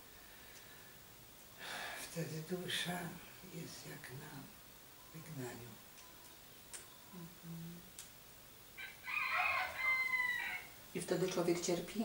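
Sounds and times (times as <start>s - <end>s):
rooster crowing: 8.8s - 10.8s.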